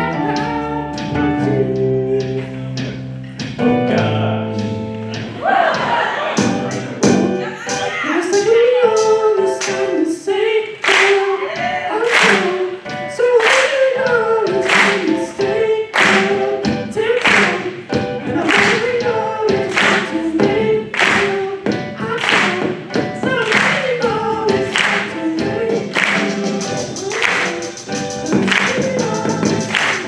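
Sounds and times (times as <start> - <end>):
live band music: 0.0 - 30.0
voices singing: 3.9 - 30.0
hand claps on a beat: 10.8 - 11.3, 12.1 - 12.6, 13.4 - 15.2, 15.9 - 16.4, 17.2 - 17.7, 18.5 - 20.2, 20.9 - 25.2, 25.9 - 30.0.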